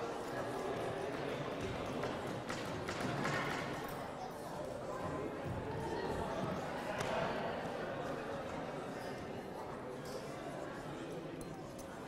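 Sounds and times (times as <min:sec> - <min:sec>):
crowd chatter in a hall: 0:00.0 - 0:12.0.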